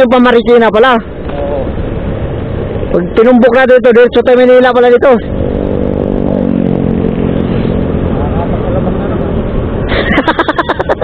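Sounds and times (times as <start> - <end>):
low rumble: 0.0 - 11.0
motorcycle engine running: 4.8 - 9.9.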